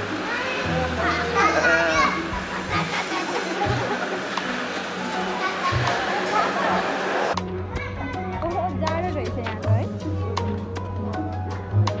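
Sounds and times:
background music: 0:00.0 - 0:12.0
people's voices: 0:00.1 - 0:09.9
child laughing: 0:01.2 - 0:04.5.

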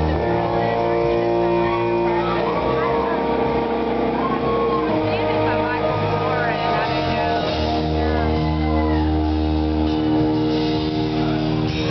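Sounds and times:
live band playing held chords: 0:00.0 - 0:11.9.

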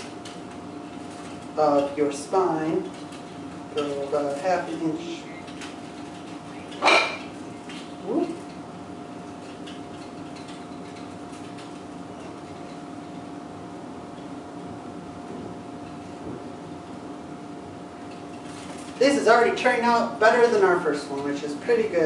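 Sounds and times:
faint room tone hum: 0:00.0 - 0:22.0.

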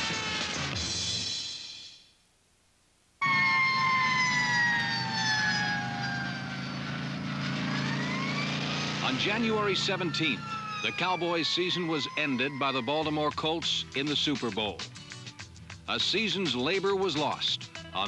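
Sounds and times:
police siren wailing: 0:00.0 - 0:00.8, 0:03.2 - 0:14.4.

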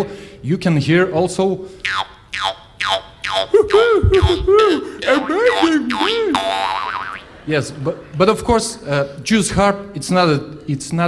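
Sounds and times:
jew's harp twanging: 0:01.8 - 0:07.3.

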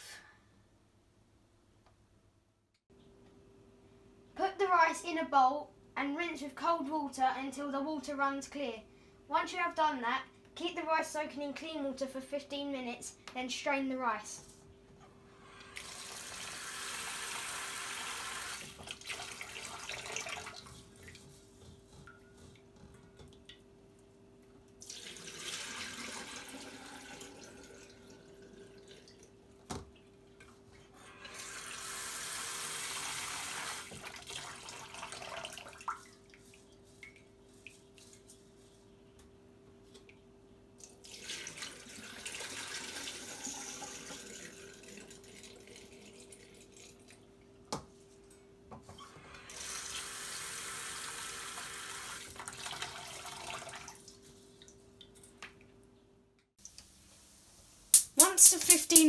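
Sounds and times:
faint steady hum: 0:00.0 - 0:57.5
tap water running into a bowl: 0:15.8 - 0:21.2, 0:24.8 - 0:30.0, 0:31.2 - 0:37.2, 0:40.8 - 0:47.2, 0:49.5 - 0:55.6.

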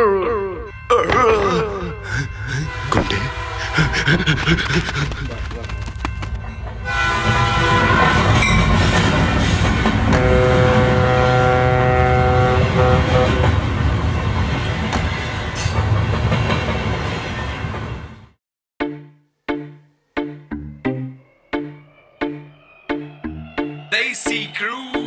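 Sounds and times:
multi-tone train horn: 0:02.7 - 0:03.8, 0:06.8 - 0:13.6
train rumbling past: 0:06.3 - 0:18.4.

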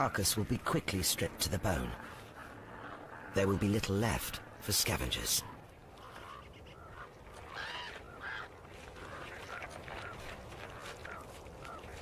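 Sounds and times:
ravens croaking: 0:00.9 - 0:12.0.

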